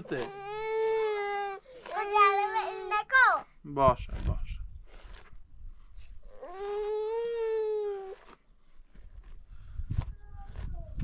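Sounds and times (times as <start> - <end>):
small child wailing: 0.1 - 3.1, 6.3 - 8.2.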